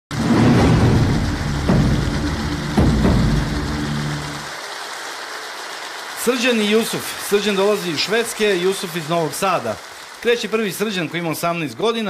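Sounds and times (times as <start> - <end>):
show music: 0.1 - 6.4
studio audience applauding: 0.1 - 12.0.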